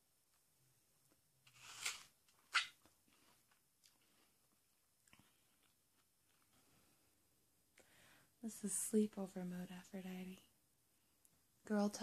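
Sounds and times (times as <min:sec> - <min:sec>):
faint chewing: 0:02.3 - 0:06.9.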